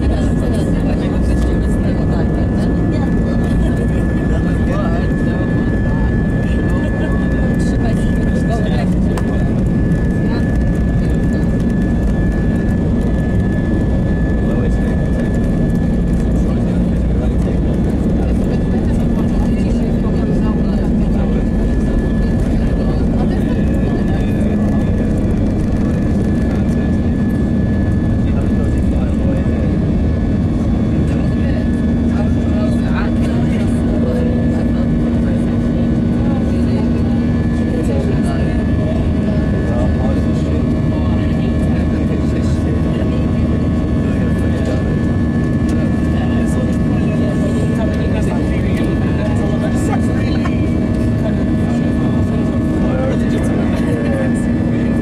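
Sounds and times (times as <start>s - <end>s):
high-pitched engine whine: 0.0s - 55.0s
jet engines rumbling: 0.0s - 55.0s.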